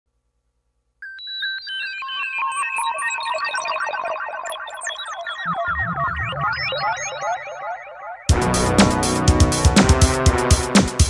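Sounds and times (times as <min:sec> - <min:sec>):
beeping synth arpeggios: 0:01.3 - 0:08.8
low bass line: 0:08.3 - 0:10.2.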